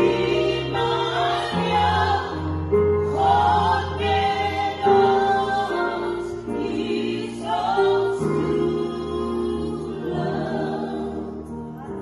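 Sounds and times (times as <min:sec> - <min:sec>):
group singing gospel song: 0:00.0 - 0:12.0.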